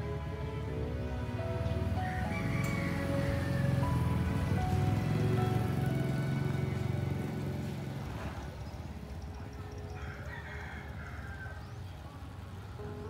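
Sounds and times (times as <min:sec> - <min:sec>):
background music: 0:00.0 - 0:13.0
rooster crowing: 0:02.0 - 0:04.1, 0:10.0 - 0:11.8.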